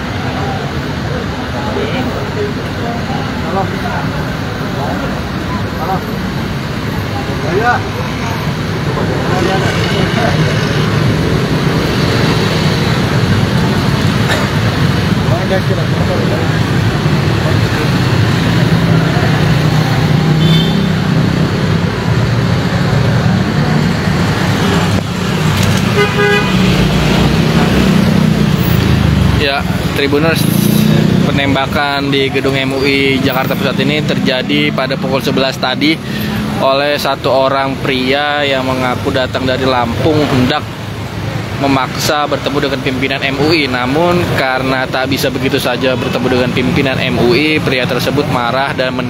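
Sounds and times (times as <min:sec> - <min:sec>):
crowd chatter: 0:00.0 - 0:39.0
road traffic: 0:00.0 - 0:49.0
car horn toot: 0:20.4 - 0:21.0, 0:25.9 - 0:26.7.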